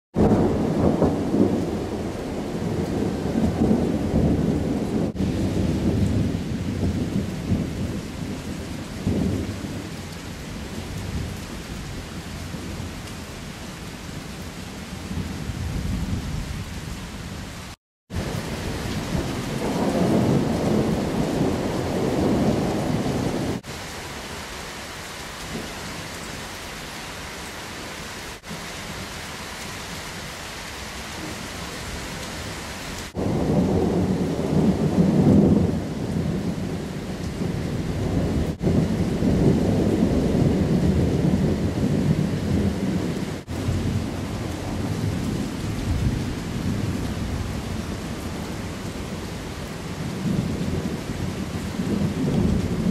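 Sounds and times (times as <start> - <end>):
thunder rumbling: 0.2 - 10.0, 18.1 - 23.7, 33.0 - 52.9
steady rain hiss: 0.3 - 52.9.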